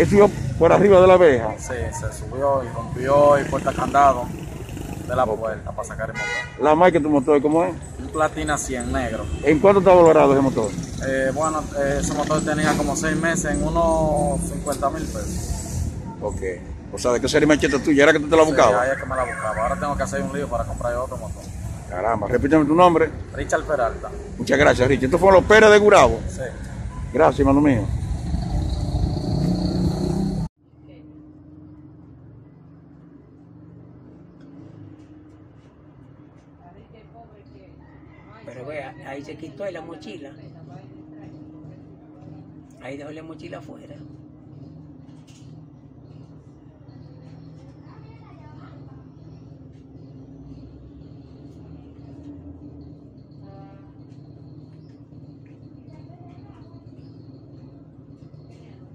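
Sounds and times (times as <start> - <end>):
vehicle engine passing by: 0.0 - 6.1, 6.9 - 30.5.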